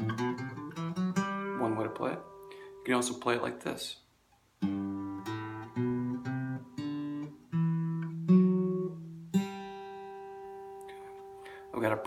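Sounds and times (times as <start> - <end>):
acoustic guitar playing a scale: 0.0 - 3.8, 4.6 - 12.0.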